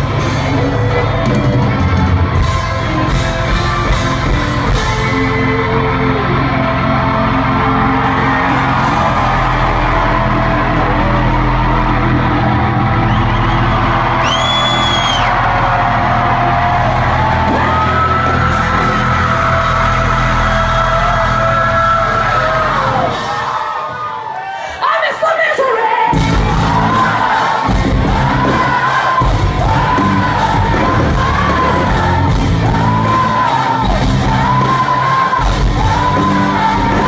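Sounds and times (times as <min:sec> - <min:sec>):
hard rock band playing: 0:00.0 - 0:24.1, 0:26.1 - 0:37.0.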